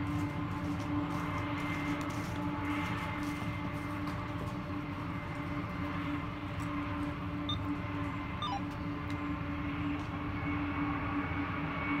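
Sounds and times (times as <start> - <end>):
distant diesel locomotive rumble: 0.0 - 12.0.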